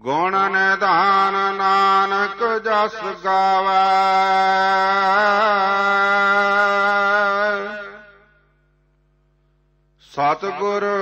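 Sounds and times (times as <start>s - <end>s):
person chanting melodically: 0.0s - 8.3s, 10.0s - 11.0s.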